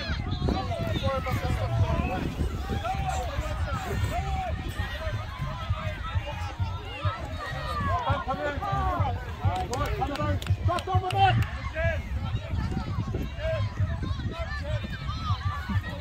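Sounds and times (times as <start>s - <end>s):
children talking and calling out: 0.0s - 16.0s
wind rumble on microphone: 0.0s - 16.0s.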